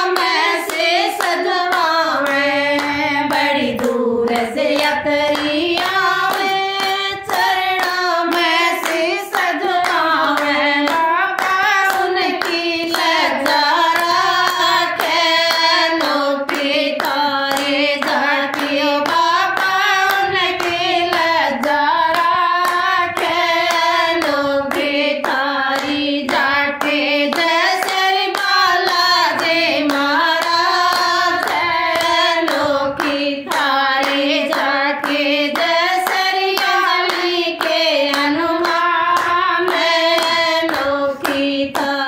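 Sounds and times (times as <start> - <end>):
rhythmic hand claps: 0.0 - 42.0
women singing devotional song: 0.0 - 42.0.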